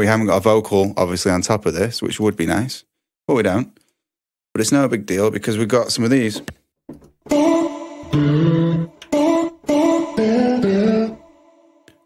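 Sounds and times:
sampled sung vocal notes: 7.3 - 12.0.

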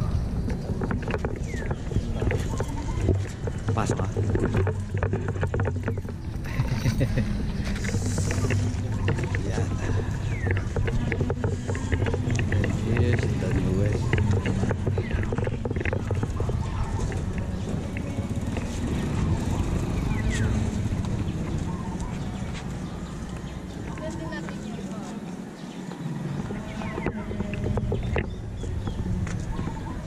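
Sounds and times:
indistinct voices: 0.0 - 30.0.

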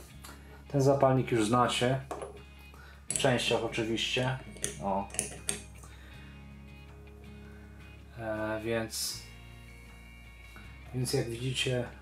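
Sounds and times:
quiet background music: 0.0 - 12.0
metallic clicks on tabletop: 4.5 - 5.8.

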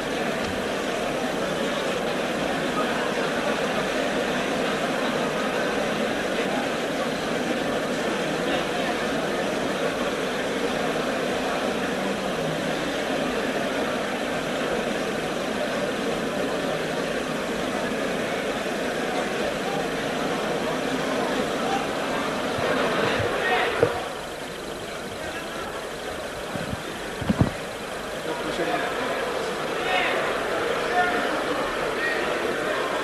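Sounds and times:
steady hiss and hum: 0.0 - 33.0.

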